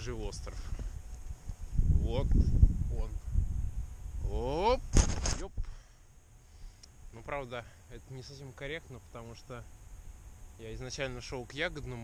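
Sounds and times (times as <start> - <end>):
faint click: 6.8 - 7.0.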